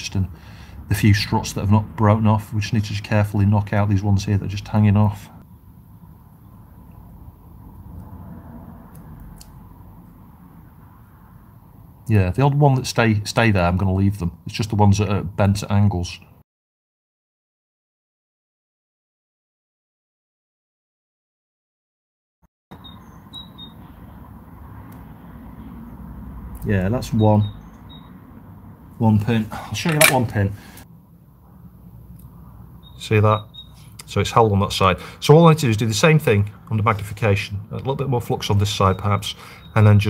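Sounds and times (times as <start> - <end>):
low steady background rumble: 0.0 - 16.4, 23.6 - 40.0.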